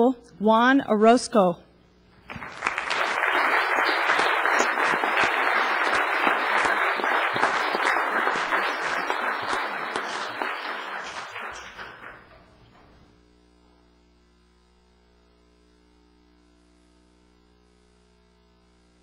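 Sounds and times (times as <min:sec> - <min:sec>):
audience applauding: 0:02.2 - 0:12.6.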